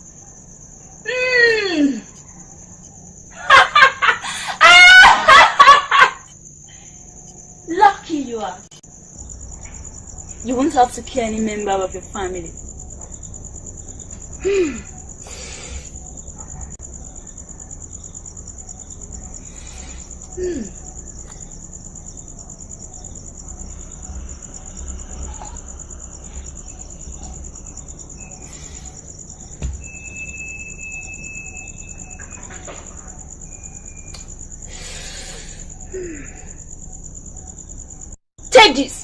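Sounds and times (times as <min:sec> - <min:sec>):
crickets chirping: 0:00.0 - 0:39.0.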